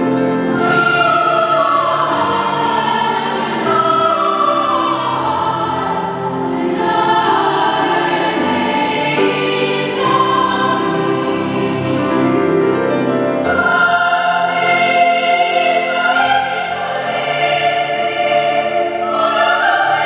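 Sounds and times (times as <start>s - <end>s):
choir singing: 0.0s - 20.0s
piano accompaniment: 0.0s - 20.0s.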